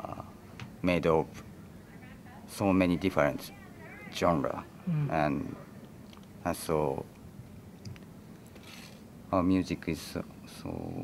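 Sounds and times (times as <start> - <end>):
man speaking: 2.5 - 5.7.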